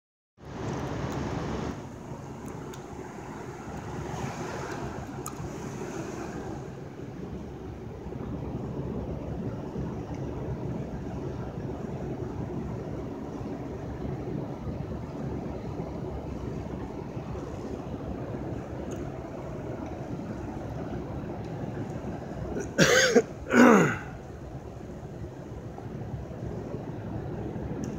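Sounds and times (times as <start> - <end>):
low rumble with hiss: 0.4 - 27.9.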